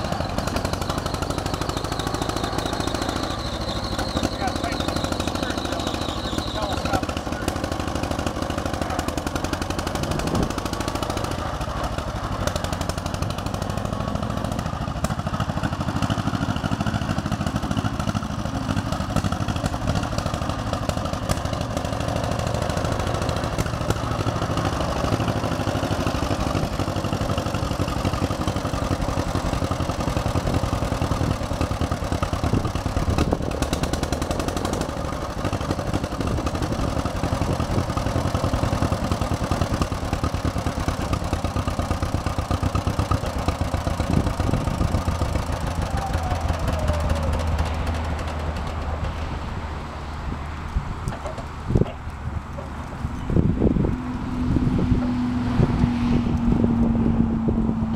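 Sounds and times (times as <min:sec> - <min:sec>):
tires on gravel: 0:00.0 - 0:57.9
tractor engine running: 0:00.0 - 0:57.9.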